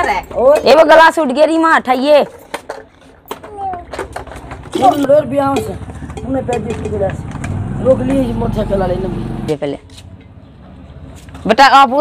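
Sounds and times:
vehicle engine hum: 0:04.5 - 0:11.4.

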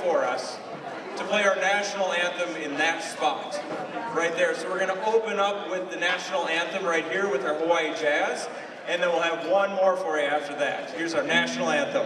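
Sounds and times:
man making announcements: 0:00.0 - 0:00.6, 0:01.2 - 0:12.0.

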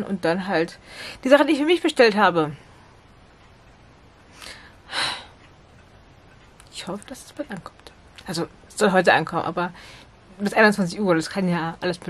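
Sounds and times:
woman breathing: 0:00.8 - 0:01.2, 0:04.3 - 0:05.5, 0:09.8 - 0:10.2.

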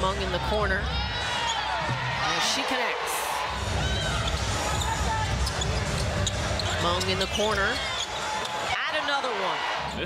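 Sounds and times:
court and crowd noise: 0:00.0 - 0:10.0.

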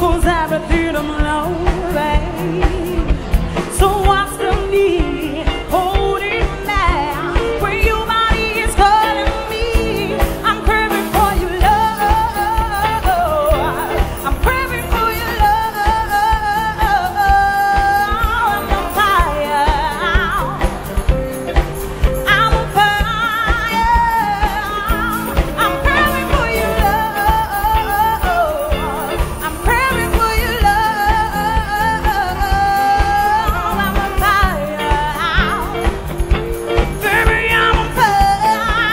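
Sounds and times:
drum beat: 0:00.0 - 0:38.9
electric guitar: 0:00.0 - 0:38.9
keyboard: 0:00.0 - 0:38.9
live band music: 0:00.0 - 0:38.9
woman singing with vibrato: 0:00.0 - 0:38.9.

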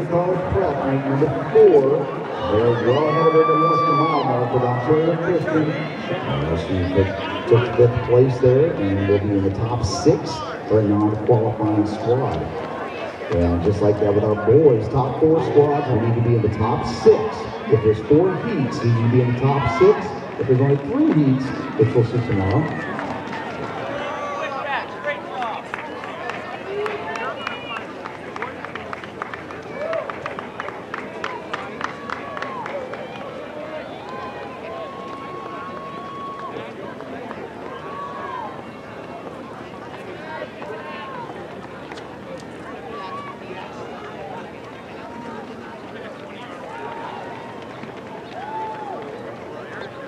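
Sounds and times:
spectators shouting encouragement: 0:00.0 - 0:13.4, 0:14.0 - 0:28.0, 0:31.1 - 0:41.6, 0:46.3 - 0:50.0.

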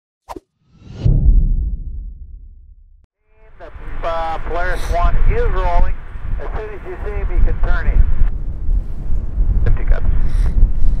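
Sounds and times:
deep whoosh and rumble: 0:00.7 - 0:11.0
air traffic control radio speech: 0:03.3 - 0:08.3, 0:09.6 - 0:10.2.

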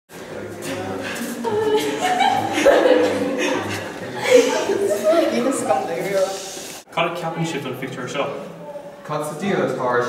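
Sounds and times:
voices singing unaccompanied: 0:00.3 - 0:06.5.

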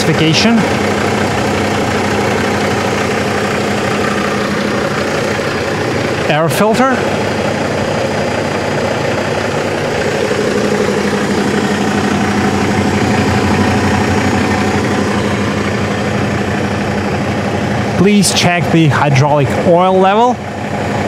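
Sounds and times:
diesel truck engine idling: 0:00.0 - 0:21.0.

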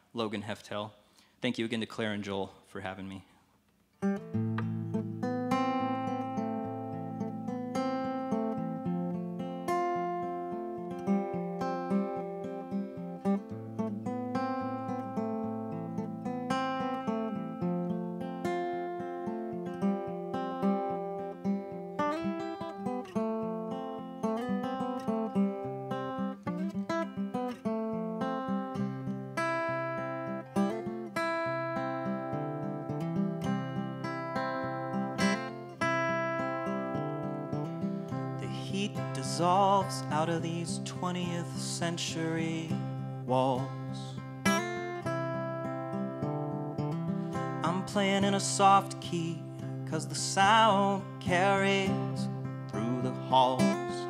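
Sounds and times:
acoustic guitar picking: 0:04.0 - 0:54.0.

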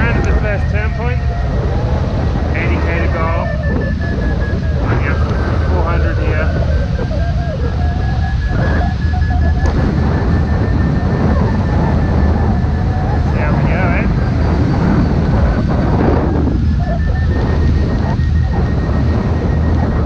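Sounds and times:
faint high pulsing tone: 0:00.0 - 0:20.0
wind rushing over microphone: 0:00.0 - 0:20.0.

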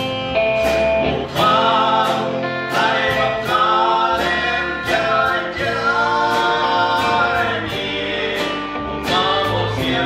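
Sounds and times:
acoustic guitar: 0:00.0 - 0:10.0
bass guitar: 0:00.0 - 0:10.0
drums: 0:00.0 - 0:10.0.

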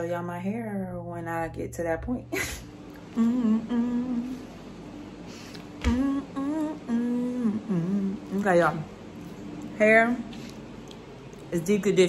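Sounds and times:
woman humming: 0:02.4 - 0:04.7, 0:05.6 - 0:08.8.

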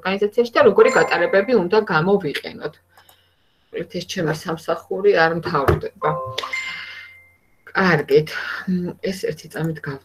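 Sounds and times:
notification chime: 0:00.6 - 0:01.9, 0:06.0 - 0:07.1.

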